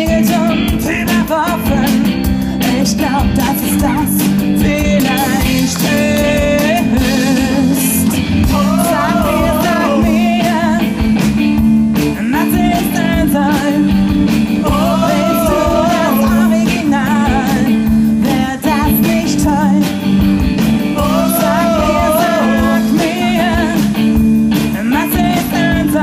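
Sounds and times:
woman singing: 0.0 - 11.1, 12.2 - 14.0, 14.6 - 20.0, 21.0 - 23.9, 24.7 - 26.0
bass guitar: 0.0 - 26.0
drums: 0.0 - 26.0
electric guitar: 0.0 - 26.0.

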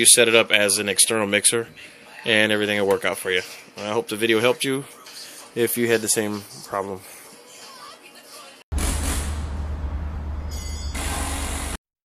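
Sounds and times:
deep rumble: 8.8 - 11.3
noisy rushing sound effect: 8.8 - 11.8.

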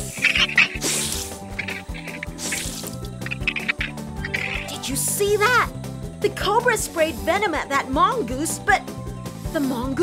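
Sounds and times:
hissing sound effects: 0.0 - 4.8
cartoon background music: 0.0 - 10.0.

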